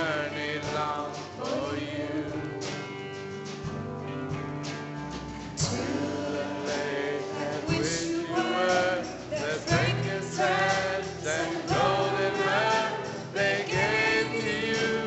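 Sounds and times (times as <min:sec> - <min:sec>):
person singing: 0:00.0 - 0:02.8, 0:05.6 - 0:15.0
drums: 0:00.0 - 0:15.0
electric bass: 0:00.0 - 0:15.0
piano: 0:00.0 - 0:15.0.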